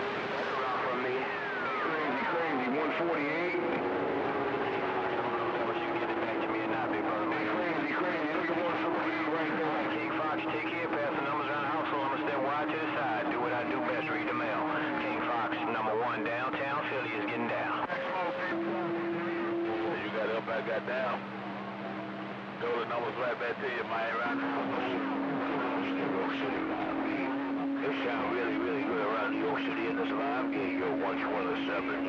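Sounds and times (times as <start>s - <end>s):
garbled radio voices: 0.0s - 21.4s, 22.5s - 32.0s.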